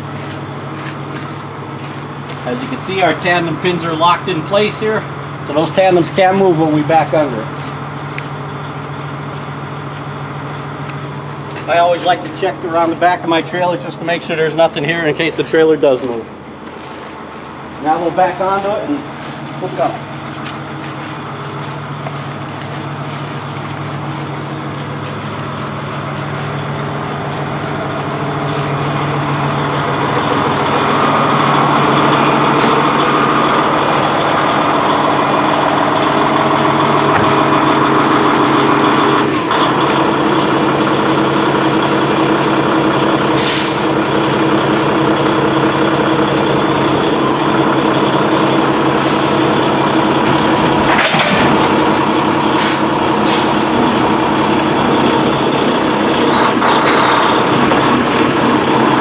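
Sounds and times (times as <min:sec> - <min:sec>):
diesel truck engine running: 0:00.0 - 0:59.0
air brake hisses: 0:43.4 - 0:44.0, 0:49.0 - 0:49.4, 0:51.8 - 0:54.6.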